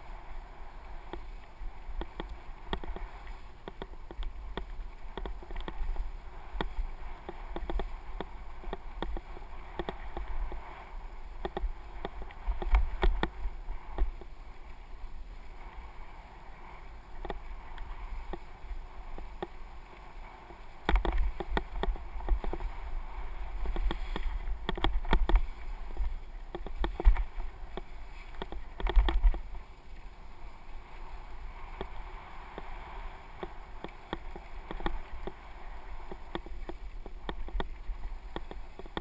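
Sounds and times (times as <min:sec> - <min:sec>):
wind on microphone: 0:00.0 - 0:39.0
bike rattling and clicking: 0:01.9 - 0:14.3, 0:20.4 - 0:22.9, 0:23.5 - 0:29.5, 0:33.4 - 0:39.0.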